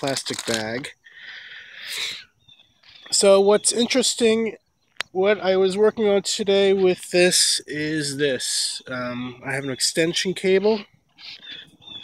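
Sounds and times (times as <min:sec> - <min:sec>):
person sniffing sharply: 0:01.2 - 0:02.2.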